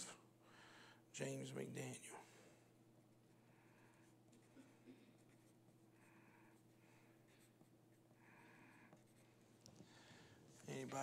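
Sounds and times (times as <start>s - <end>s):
pencil scratching on paper: 5.2s - 9.5s.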